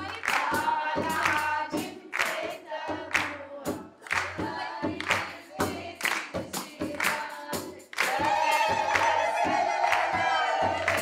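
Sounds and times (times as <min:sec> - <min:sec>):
hand-clapping: 0:00.0 - 0:03.4, 0:04.0 - 0:07.3, 0:07.9 - 0:11.0
frame drums: 0:00.0 - 0:11.0.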